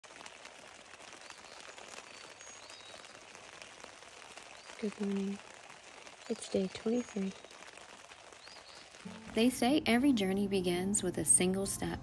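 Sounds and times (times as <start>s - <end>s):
raindrops ticking on fabric: 0.0s - 11.7s
rain on a tent canopy: 0.0s - 12.0s.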